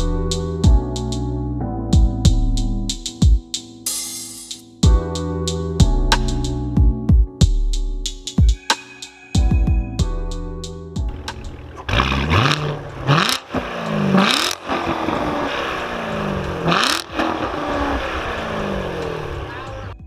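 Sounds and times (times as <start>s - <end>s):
exhaust cracks: 11.1s - 19.8s
car engine revving: 11.1s - 20.0s.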